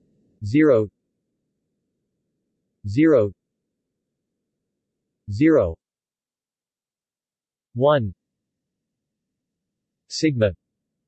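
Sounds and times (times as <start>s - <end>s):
synthetic voice speaking: 0.4s - 0.9s, 2.9s - 3.3s, 5.3s - 5.8s, 7.8s - 8.2s, 10.2s - 10.6s.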